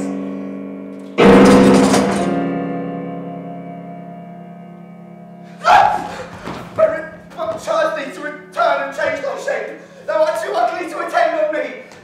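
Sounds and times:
person crying out: 5.6s - 6.3s.

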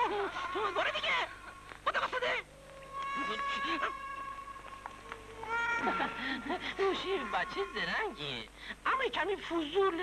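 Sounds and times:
high-pitched meow-like cry: 2.7s - 6.2s.

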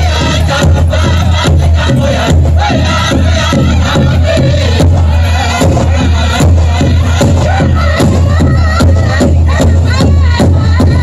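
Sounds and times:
big drum steady beat: 0.0s - 11.0s
group chanted singing: 0.0s - 11.0s.

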